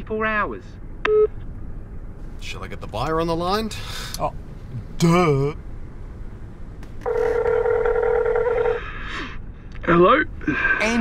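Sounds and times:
telephone ringback tone: 0:07.0 - 0:08.8.

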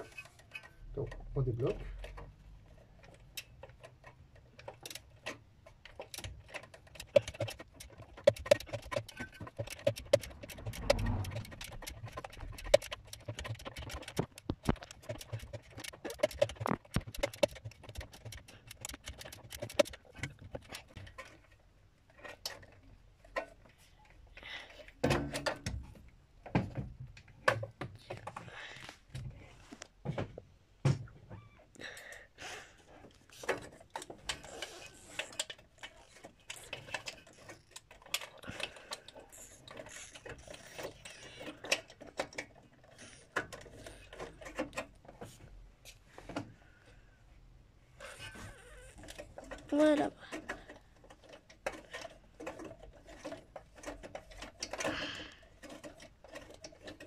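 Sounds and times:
ratchet clicking: 0:06.1 - 0:20.0.

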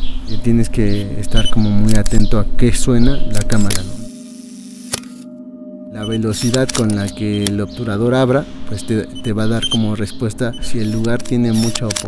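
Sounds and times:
ambient music drone: 0:00.1 - 0:12.0
camera shutter click: 0:04.7 - 0:05.2, 0:06.4 - 0:07.2, 0:11.0 - 0:12.0.

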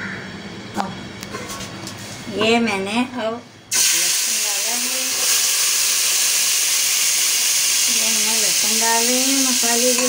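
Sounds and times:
hot oil sizzling: 0:03.7 - 0:10.0.

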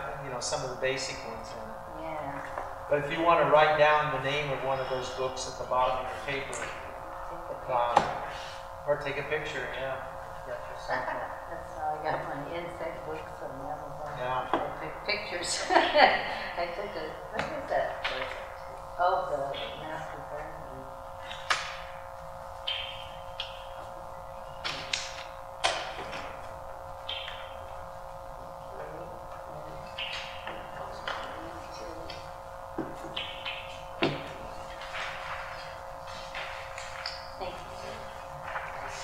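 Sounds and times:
steady hum: 0:00.0 - 0:39.0
paper rustling: 0:34.5 - 0:39.0.

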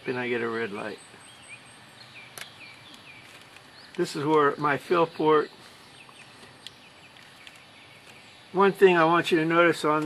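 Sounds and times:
distant bird chirps: 0:00.0 - 0:10.0.

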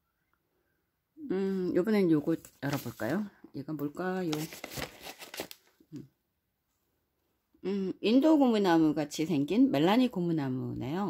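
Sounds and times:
paper wrapping rustling: 0:02.3 - 0:03.3, 0:04.1 - 0:05.8.

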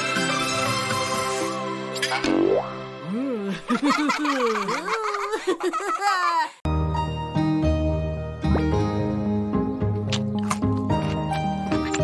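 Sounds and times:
light cartoon music: 0:00.0 - 0:05.2, 0:06.7 - 0:12.0
cartoon boing pitch glide: 0:02.2 - 0:02.7.

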